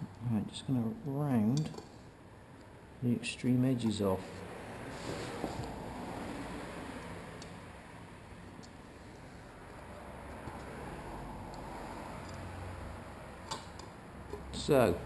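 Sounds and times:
steady background hum: 0:00.0 - 0:15.0.

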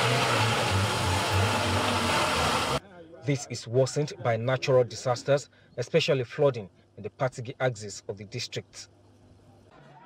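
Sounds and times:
car engine running hard: 0:00.0 - 0:02.8.

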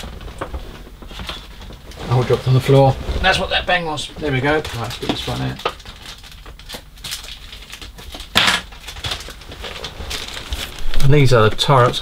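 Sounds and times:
small rustles of handling: 0:00.0 - 0:06.5, 0:08.8 - 0:12.0.

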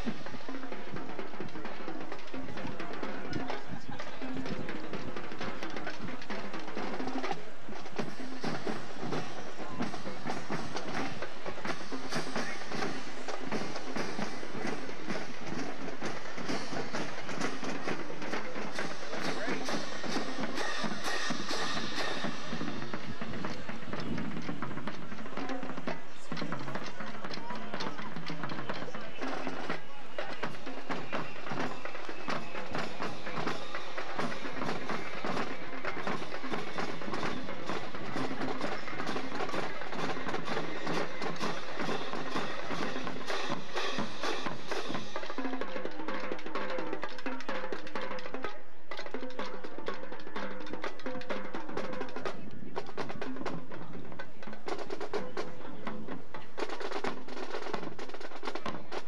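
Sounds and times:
marching drumline cadence: 0:00.0 - 0:59.0.

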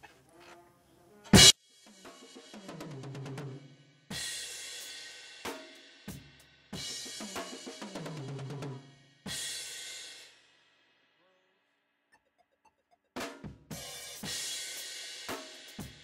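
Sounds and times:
crash cymbal: 0:01.4 - 0:02.8
fast drum fills: 0:01.4 - 0:09.8, 0:13.7 - 0:16.0.

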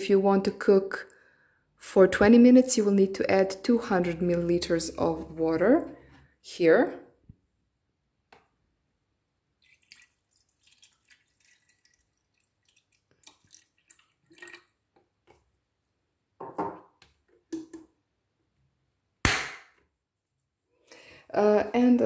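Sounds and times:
water trickling and dripping: 0:09.6 - 0:14.8
loud sharp knock: 0:19.3 - 0:19.8.

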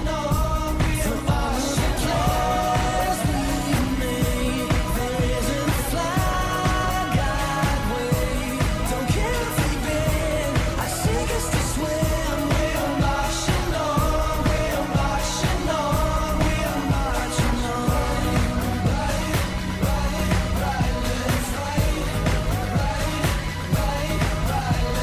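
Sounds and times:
pop song with singing and drums: 0:00.0 - 0:25.0.

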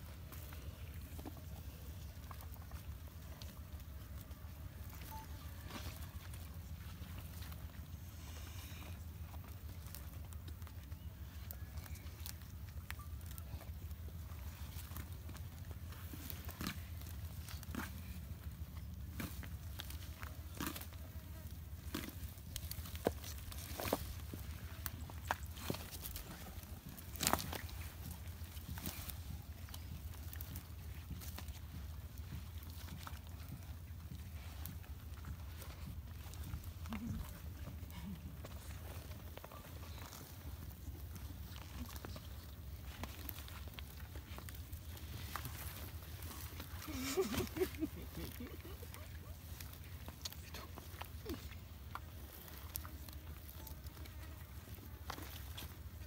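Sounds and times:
steady low rumble: 0:00.0 - 0:56.0.

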